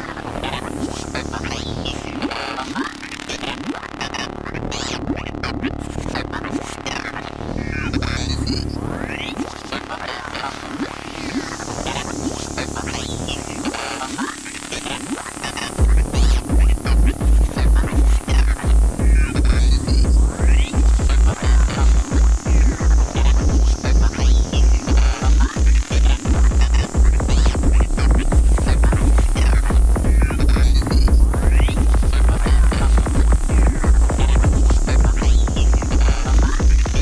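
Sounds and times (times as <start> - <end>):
fast electronic dance music: 0.0 - 37.0
heavy kick drum: 15.8 - 37.0.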